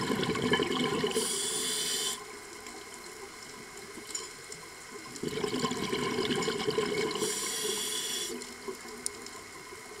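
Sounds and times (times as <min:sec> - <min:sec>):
exhaled bubbles gurgling: 0:00.0 - 0:01.8, 0:05.1 - 0:08.2
underwater noise: 0:00.0 - 0:10.0
hissing regulator inhalation: 0:01.1 - 0:02.2, 0:07.1 - 0:08.4.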